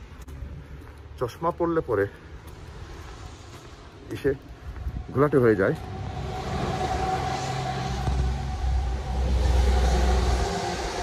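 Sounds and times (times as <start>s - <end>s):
vehicle engine rumbling past: 4.9s - 11.0s.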